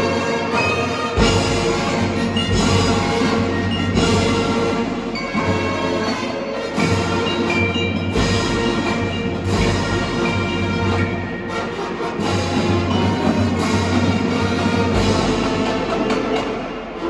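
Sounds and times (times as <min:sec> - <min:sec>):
mallet percussion: 0:00.0 - 0:17.0
marching band held chords: 0:00.0 - 0:17.0
heavy drum strikes: 0:01.2 - 0:05.8.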